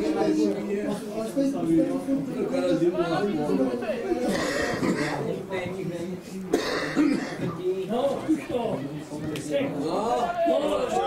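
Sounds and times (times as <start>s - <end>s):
spectators talking: 0.0s - 11.0s
person clearing throat: 4.2s - 5.2s, 6.5s - 7.5s.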